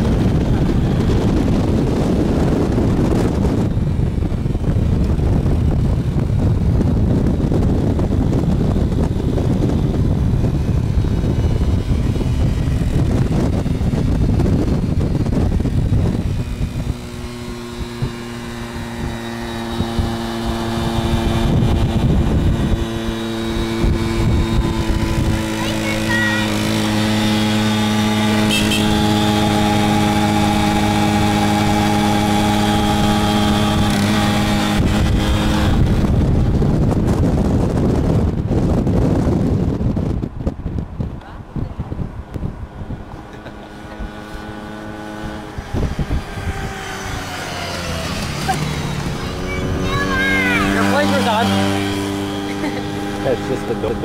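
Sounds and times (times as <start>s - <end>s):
two-stroke moped engine: 0.0s - 40.3s, 41.2s - 54.0s
wind buffeting microphone: 0.0s - 54.0s
person yelling: 49.3s - 51.6s.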